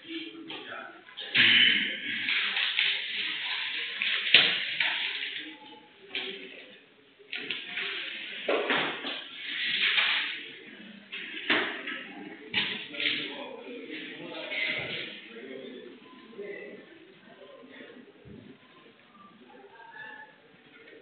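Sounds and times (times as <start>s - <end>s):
muffled indistinct voices: 0.0s - 21.0s.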